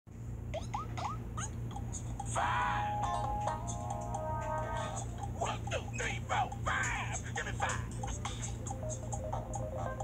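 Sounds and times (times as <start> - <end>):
steady low hum: 0.1 - 10.0.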